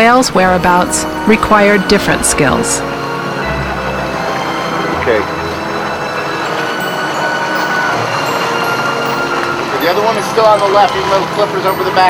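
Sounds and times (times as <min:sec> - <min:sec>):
boat motor running: 0:00.0 - 0:12.0
sea noise: 0:00.0 - 0:12.0
wind: 0:00.0 - 0:12.0.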